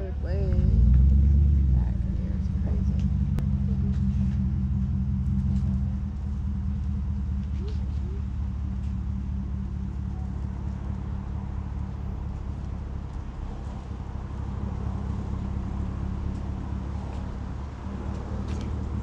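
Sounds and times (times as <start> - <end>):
vehicle engine rumble: 0.0 - 19.0.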